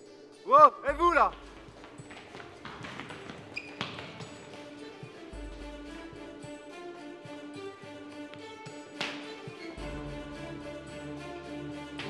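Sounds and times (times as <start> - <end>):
running footsteps on concrete: 0.9 - 6.6.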